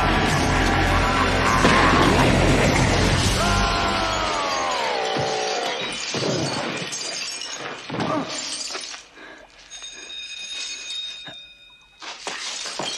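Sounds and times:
debris crashing down: 0:00.1 - 0:08.7
glass shattering: 0:01.4 - 0:11.4, 0:12.0 - 0:12.9
glass shards clinking: 0:04.2 - 0:12.9.

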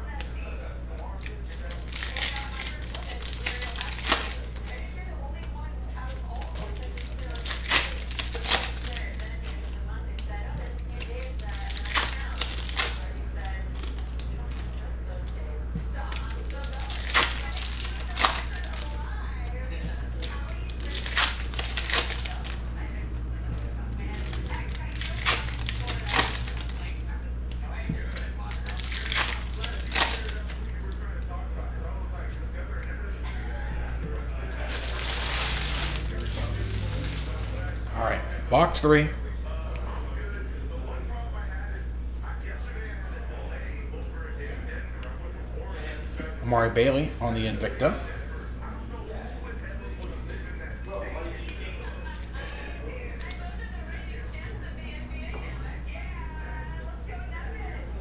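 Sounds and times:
foil wrappers crinkling and tearing: 0:01.1 - 0:14.9, 0:15.9 - 0:22.7, 0:23.6 - 0:31.3, 0:34.5 - 0:38.8, 0:51.4 - 0:53.4.

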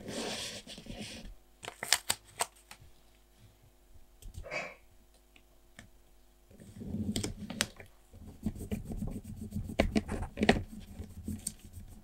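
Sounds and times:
paper rustling and rubbing: 0:06.6 - 0:12.0.

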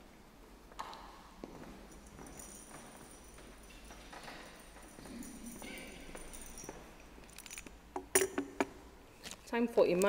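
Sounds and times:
heeled footsteps on tiled floor: 0:01.4 - 0:07.2.

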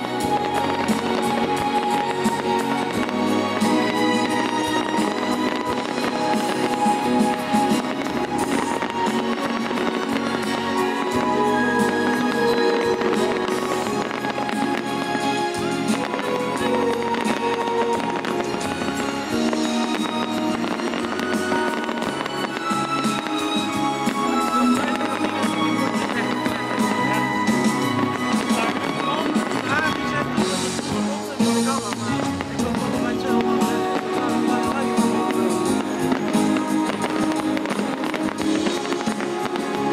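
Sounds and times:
fireworks bursting and crackling: 0:00.0 - 0:39.9
steady music: 0:00.0 - 0:39.9.

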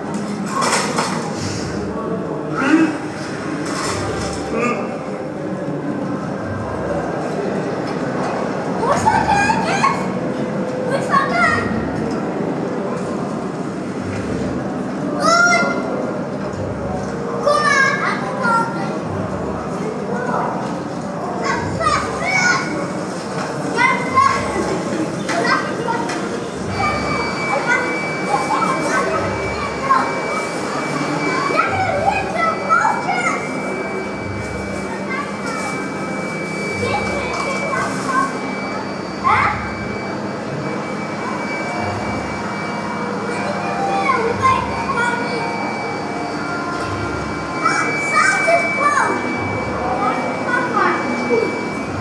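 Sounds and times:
children shouting: 0:15.1 - 0:16.1, 0:21.4 - 0:23.0, 0:23.6 - 0:40.1, 0:40.9 - 0:52.0.

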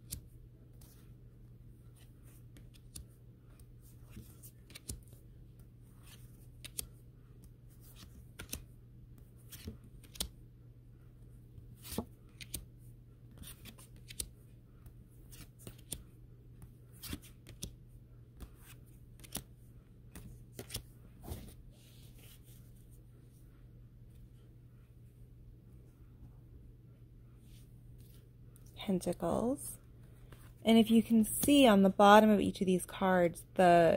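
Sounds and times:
cards flipping with sharp snaps: 0:04.1 - 0:05.2, 0:06.1 - 0:06.9, 0:07.9 - 0:08.7, 0:09.5 - 0:10.3, 0:13.4 - 0:14.3, 0:15.3 - 0:16.0, 0:18.4 - 0:19.5, 0:20.1 - 0:20.9.

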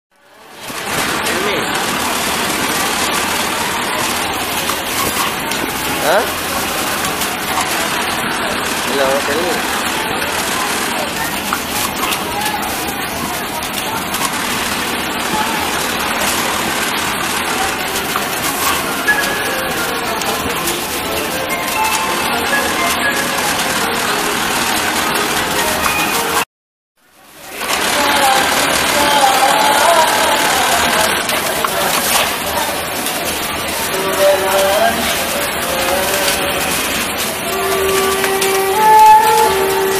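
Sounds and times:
sewing machines droning: 0:00.3 - 0:26.5, 0:27.1 - 0:39.9.

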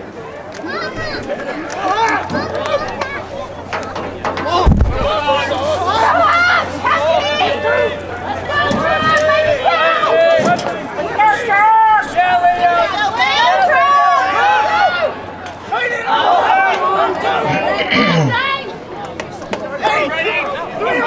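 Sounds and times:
people talking and calling out: 0:00.0 - 0:21.0.

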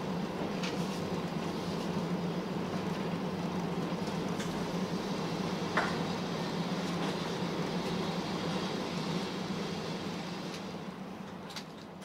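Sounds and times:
railcar engine hum: 0:00.0 - 0:12.0.

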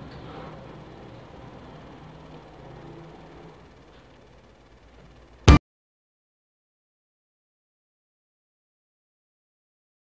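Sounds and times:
low background hum: 0:00.0 - 0:05.6.

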